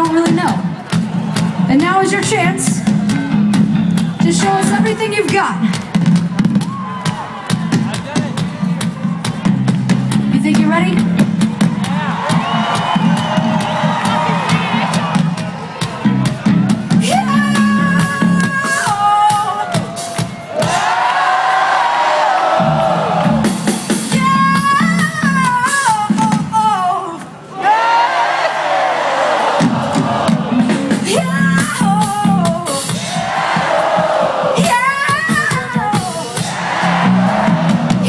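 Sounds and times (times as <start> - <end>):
drum beat: 0.0 - 26.8, 29.3 - 38.0
live rock band: 0.0 - 27.5, 29.3 - 38.0
crowd whooping: 6.3 - 9.5, 11.6 - 24.8, 32.9 - 38.0.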